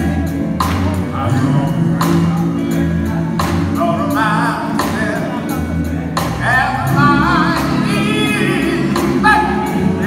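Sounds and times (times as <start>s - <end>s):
band accompaniment: 0.0s - 10.0s
male vocal group singing: 0.0s - 10.0s.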